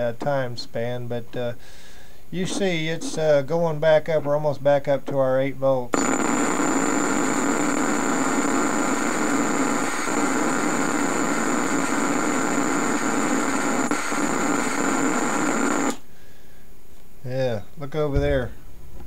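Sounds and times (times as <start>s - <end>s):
tesla coil buzzing: 5.9s - 16.0s
thin high whine: 5.9s - 16.0s.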